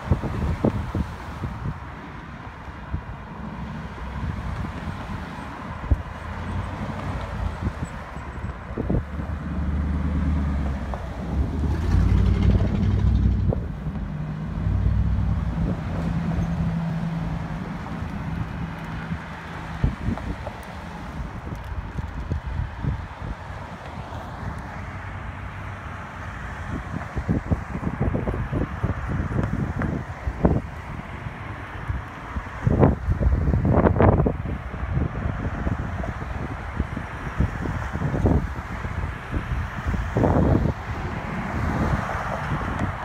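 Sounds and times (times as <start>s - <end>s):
cars passing: 0.0s - 43.0s.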